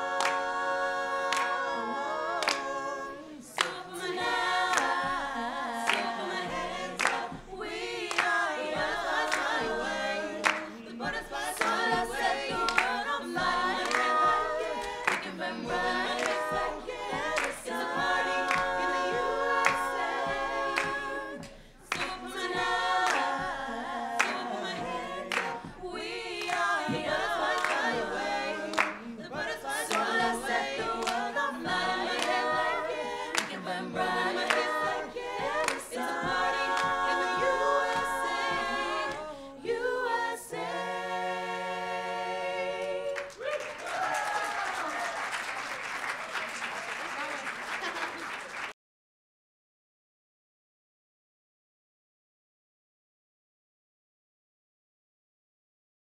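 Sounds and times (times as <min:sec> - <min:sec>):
group singing a cappella: 0:00.0 - 0:44.9
sharp claps: 0:03.6 - 0:03.8, 0:04.7 - 0:05.2, 0:05.9 - 0:06.1, 0:07.0 - 0:07.4, 0:08.0 - 0:08.5, 0:10.4 - 0:10.7, 0:11.5 - 0:13.0, 0:14.8 - 0:15.4, 0:17.2 - 0:17.8, 0:20.8 - 0:22.2, 0:23.0 - 0:23.4, 0:24.2 - 0:24.5, 0:25.3 - 0:25.8, 0:26.4 - 0:27.9, 0:28.7 - 0:29.1, 0:43.2 - 0:48.8.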